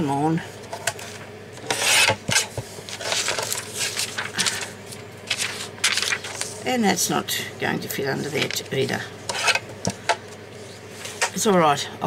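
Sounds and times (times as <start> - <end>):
paper scraping against plastic: 1.6 - 4.7, 5.3 - 6.6.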